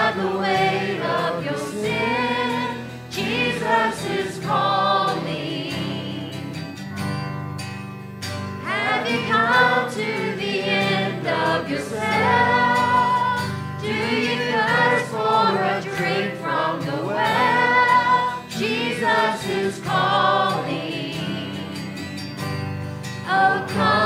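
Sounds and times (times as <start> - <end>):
congregation singing worship song: 0.0 - 7.0, 8.6 - 24.0
instrumental accompaniment: 0.0 - 24.0.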